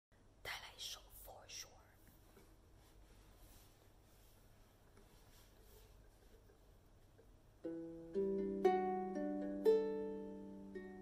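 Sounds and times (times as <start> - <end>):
woman whispering: 0.4 - 2.2.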